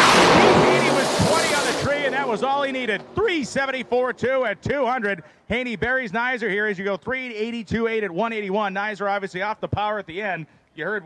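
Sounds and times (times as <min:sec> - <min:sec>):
drag cars engine roar: 0:00.0 - 0:04.4.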